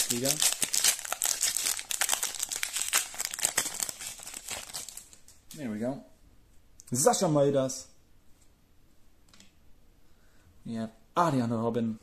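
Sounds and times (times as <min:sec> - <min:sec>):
foil wrapper crinkling and tearing: 0:00.0 - 0:05.2.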